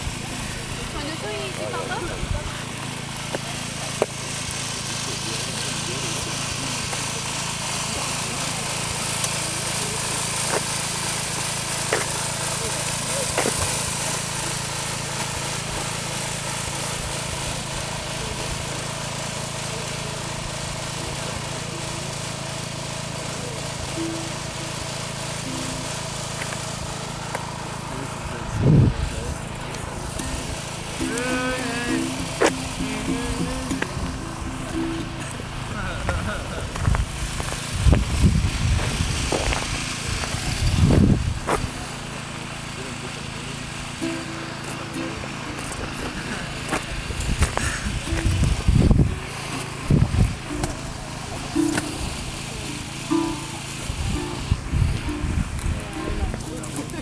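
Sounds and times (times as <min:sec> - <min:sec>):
road noise: 0:00.0 - 0:57.0
vehicle engine drone: 0:00.0 - 0:57.0
voices: 0:00.0 - 0:57.0.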